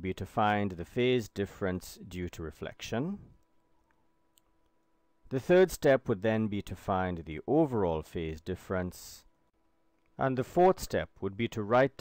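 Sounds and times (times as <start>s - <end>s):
faint steady hum: 0.0s - 12.0s
man's voice: 10.2s - 12.0s.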